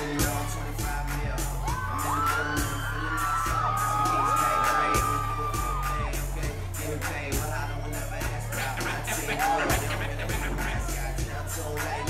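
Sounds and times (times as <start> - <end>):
bass-heavy beat: 0.0 - 12.0
voices whooping and singing: 0.0 - 12.0.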